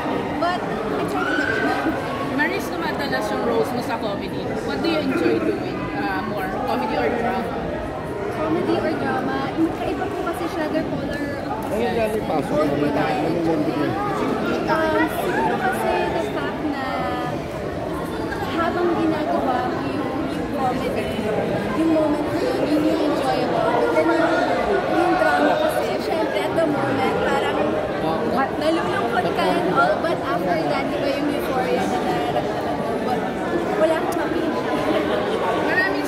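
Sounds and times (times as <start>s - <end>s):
crowd chatter: 0.0s - 36.0s.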